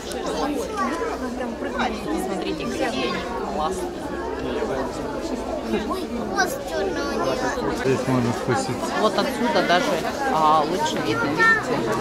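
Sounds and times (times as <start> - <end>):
children talking: 0.0 - 12.0
crowd chatter: 0.0 - 12.0.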